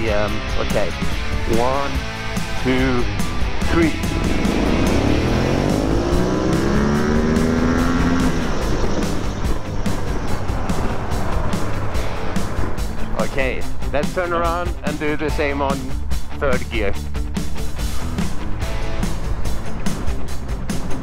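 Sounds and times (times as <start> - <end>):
motorcycle engine accelerating: 2.1 - 13.9, 17.2 - 21.0.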